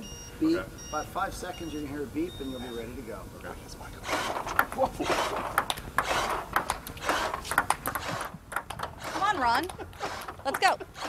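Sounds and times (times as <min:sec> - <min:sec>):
table tennis balls clicking: 0:04.4 - 0:11.0.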